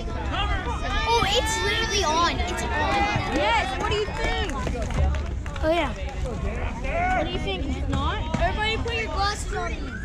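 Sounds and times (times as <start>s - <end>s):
children chattering: 0.8s - 4.8s.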